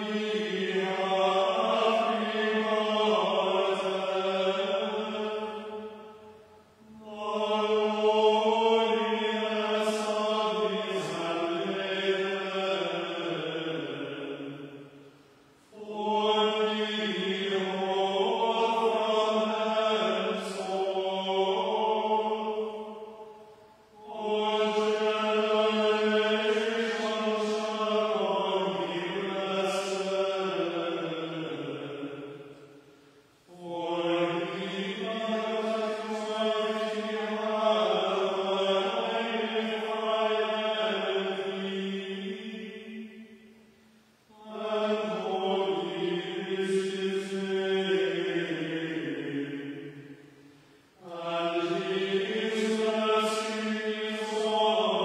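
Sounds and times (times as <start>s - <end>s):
choir chanting in unison: 0.0s - 15.0s, 15.6s - 32.9s, 33.5s - 43.6s, 44.3s - 50.4s, 51.0s - 55.0s.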